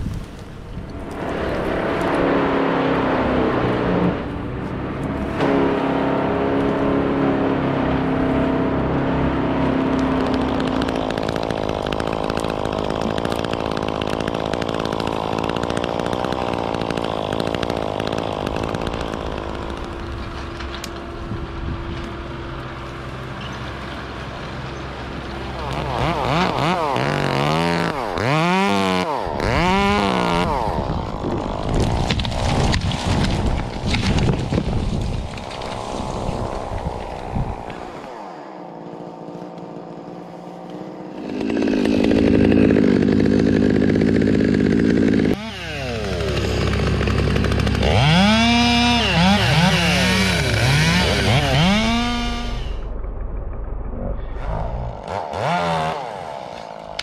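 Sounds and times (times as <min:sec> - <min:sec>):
chainsaw running: 0:00.8 - 0:57.0.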